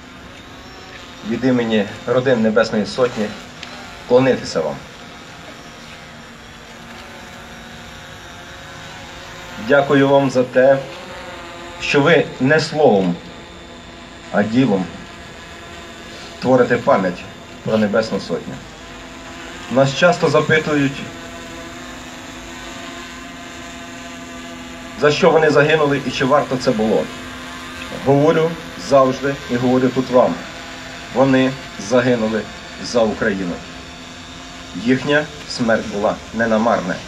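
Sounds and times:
engine drone: 0:00.0 - 0:37.0.

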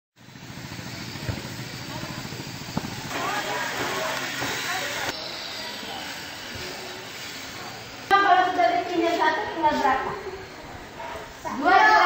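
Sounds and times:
faint voices: 0:00.8 - 0:12.0.

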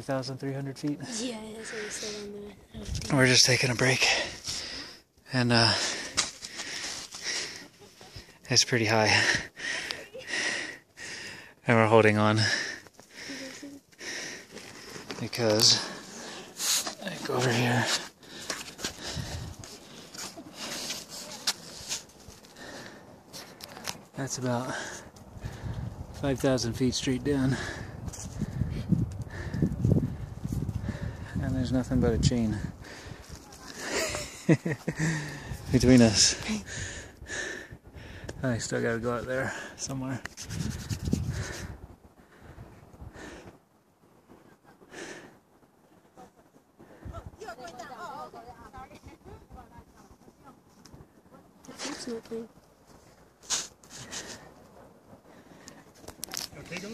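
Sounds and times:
brief sharp hiss: 0:53.4 - 0:54.1.

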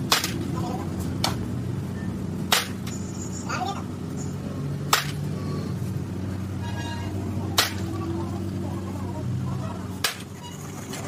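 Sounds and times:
sharp crack: 0:00.0 - 0:00.6, 0:02.5 - 0:02.9, 0:04.9 - 0:05.3, 0:07.5 - 0:08.0, 0:10.0 - 0:10.3
engine humming: 0:00.0 - 0:11.0.

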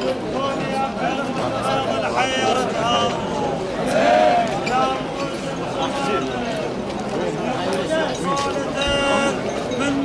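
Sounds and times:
men chanting in a crowd: 0:00.0 - 0:06.6, 0:07.8 - 0:10.0.

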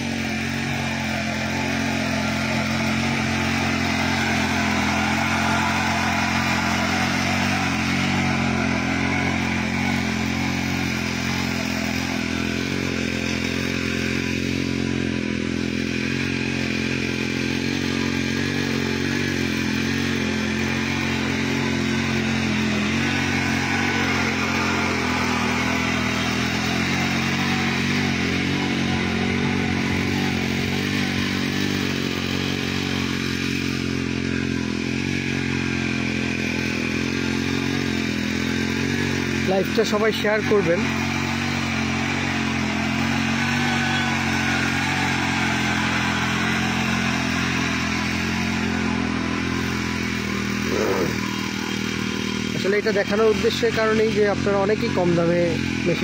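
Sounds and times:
tiller engine running: 0:00.0 - 0:56.0.

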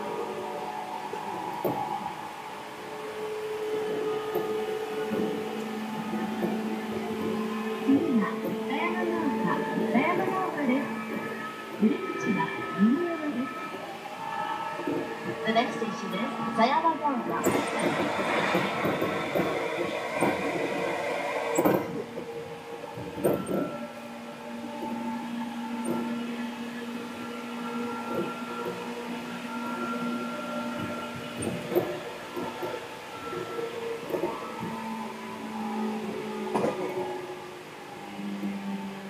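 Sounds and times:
rail-joint clicks: 0:00.0 - 0:39.0
train motor whine: 0:00.0 - 0:39.0.

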